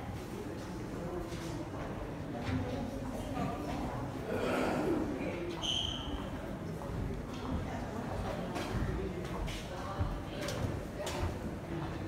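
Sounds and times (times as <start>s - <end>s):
murmur of faint voices: 0.0s - 12.0s.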